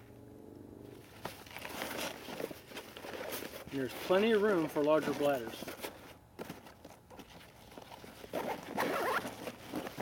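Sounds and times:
nylon fabric rustling: 6.8 - 10.0.

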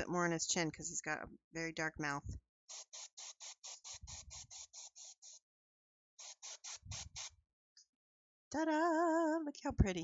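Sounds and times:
airbrush spraying in short bursts: 2.7 - 5.4, 6.2 - 7.4.

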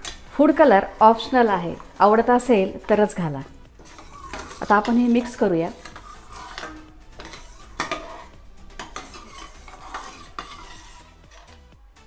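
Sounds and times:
ladle scraping and clinking pan: 3.7 - 11.7.

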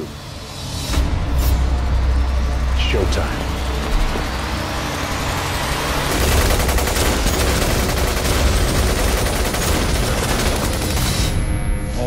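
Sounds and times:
rapid rifle gunfire: 6.0 - 11.4.

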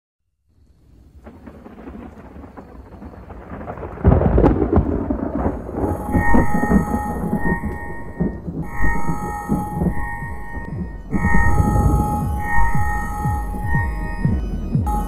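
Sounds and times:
deep thunder-like rumble: 1.1 - 15.0
high electronic tones: 5.8 - 15.0.

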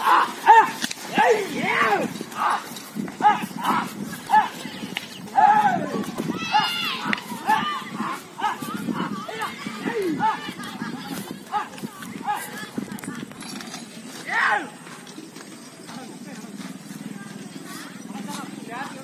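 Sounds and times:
men shouting calls: 0.0 - 13.0, 14.1 - 14.8
faint hoofbeats on dirt: 0.0 - 19.0.

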